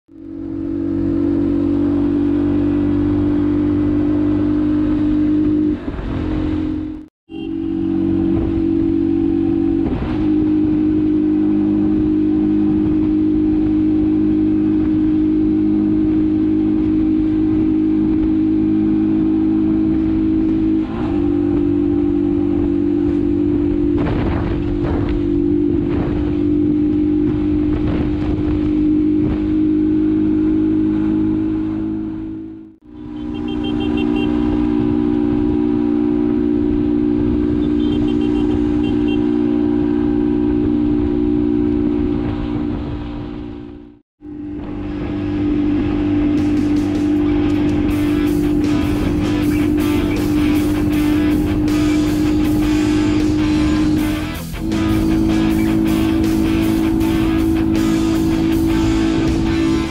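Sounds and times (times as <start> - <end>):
motorcycle engine cruising: 0.1 - 59.9
road and wind noise: 0.1 - 59.9.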